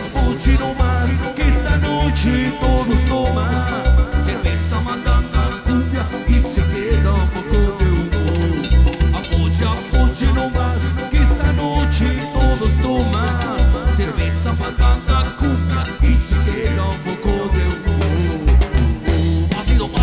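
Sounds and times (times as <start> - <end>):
bass and percussion beat: 0.0 - 20.0
keyboard melody: 0.0 - 20.0.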